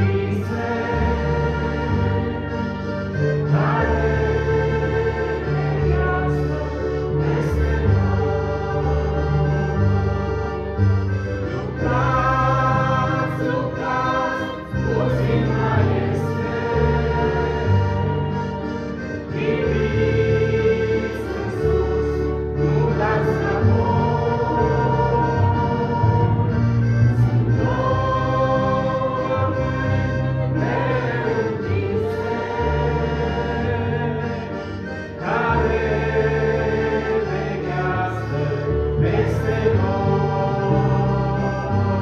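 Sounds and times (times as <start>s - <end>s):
choir singing: 0.0s - 42.0s
instrumental accompaniment: 0.0s - 42.0s.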